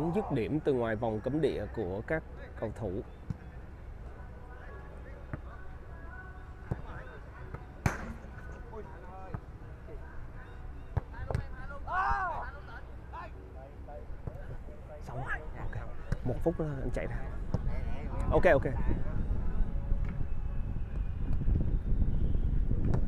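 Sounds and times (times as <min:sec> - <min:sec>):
distant players' voices: 0:00.0 - 0:21.4
football kicked hard: 0:22.8 - 0:23.0.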